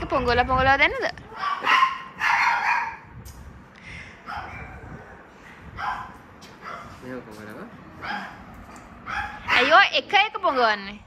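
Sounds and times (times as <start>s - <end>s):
dog barking: 1.4s - 3.1s, 4.2s - 4.9s, 5.8s - 7.0s, 8.0s - 9.8s.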